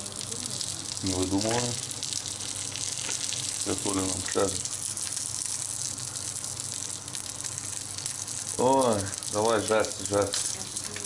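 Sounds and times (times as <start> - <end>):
patty sizzling in frying pan: 0.0 - 11.0.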